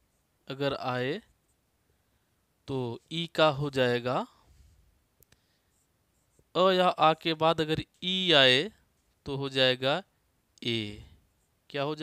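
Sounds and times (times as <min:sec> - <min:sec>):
man speaking: 0:00.5 - 0:01.3, 0:02.7 - 0:04.4, 0:06.5 - 0:11.1, 0:11.7 - 0:12.0.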